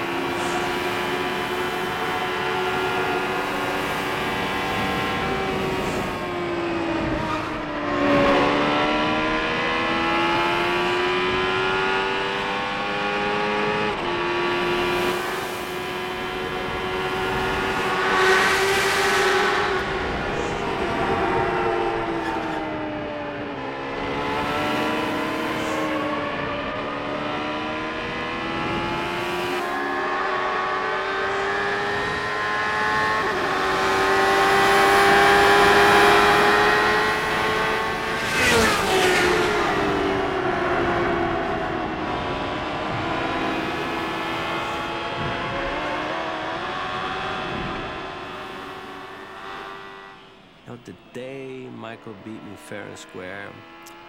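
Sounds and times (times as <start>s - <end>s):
cars passing close by: 0.0s - 54.0s
race car engine at high revs: 0.0s - 54.0s.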